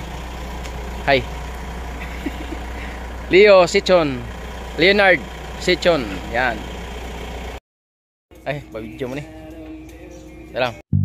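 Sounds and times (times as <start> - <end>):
vehicle engine idling: 0.0 - 7.6.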